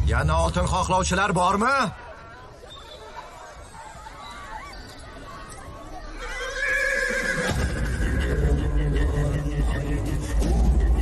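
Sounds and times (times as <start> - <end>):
horse whinnying: 6.2 - 8.4.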